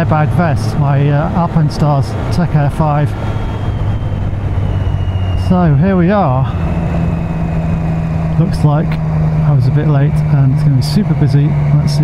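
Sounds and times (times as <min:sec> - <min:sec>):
motorcycle engine cruising: 0:00.0 - 0:12.0
wind and road noise: 0:00.0 - 0:12.0.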